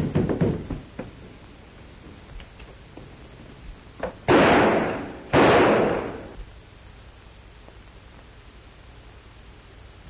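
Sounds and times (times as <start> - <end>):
pistol shots with echo: 4.2 - 6.4.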